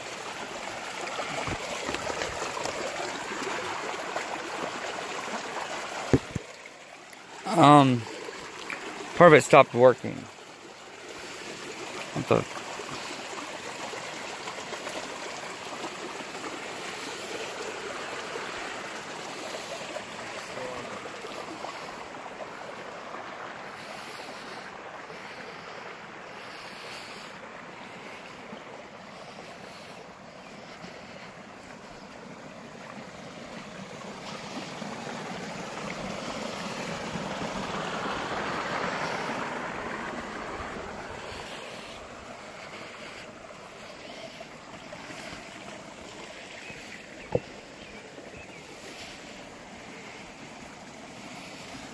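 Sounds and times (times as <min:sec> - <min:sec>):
creek water running: 0:00.0 - 0:51.9.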